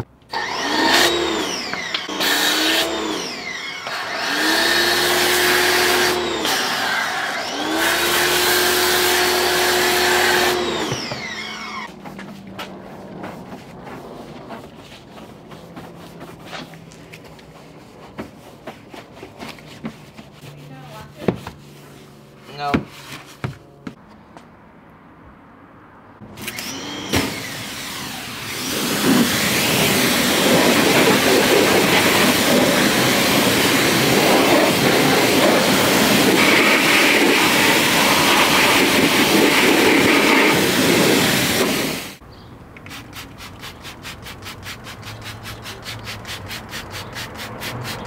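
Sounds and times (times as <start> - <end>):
pressure washer spraying water: 0.3 - 11.9, 26.4 - 42.2, 42.8 - 48.0.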